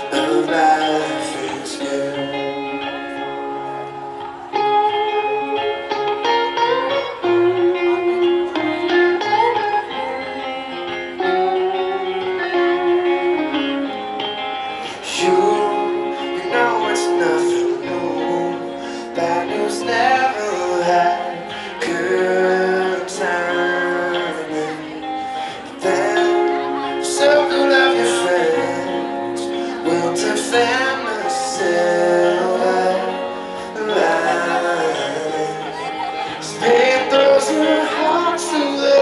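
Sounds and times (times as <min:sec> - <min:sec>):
live band playing slow guitar song: 0:00.0 - 0:39.0.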